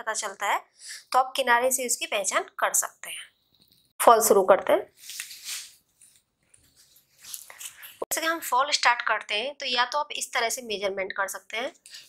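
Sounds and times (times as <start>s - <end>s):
fabric rustling: 5.0s - 8.1s.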